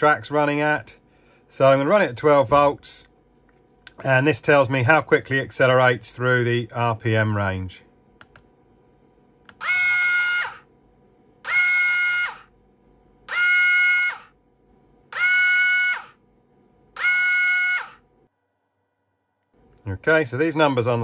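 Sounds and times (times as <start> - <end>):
electric motor whine: 9.6 - 10.6, 11.5 - 12.5, 13.3 - 14.3, 15.2 - 16.1, 17.0 - 18.0.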